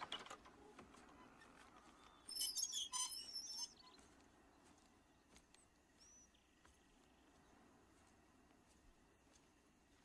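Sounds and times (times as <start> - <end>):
faint outdoor background: 0.0 - 10.0
birds twittering: 1.1 - 7.7.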